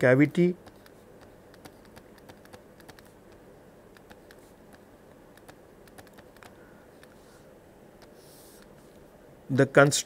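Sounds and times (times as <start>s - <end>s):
stylus tapping on pen tablet: 0.6s - 7.2s.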